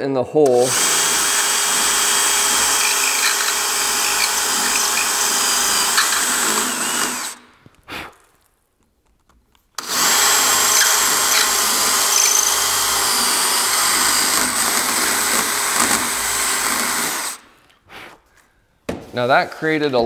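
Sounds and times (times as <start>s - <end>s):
cordless drill boring wood: 0.5s - 7.5s, 9.8s - 17.5s.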